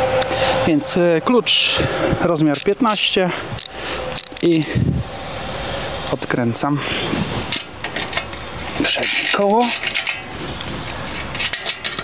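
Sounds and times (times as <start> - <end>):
ratchet wrench clicking: 2.5 - 4.7, 7.5 - 10.3.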